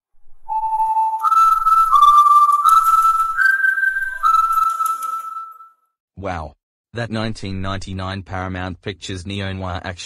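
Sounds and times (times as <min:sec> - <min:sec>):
whistled tune: 0:00.4 - 0:05.9.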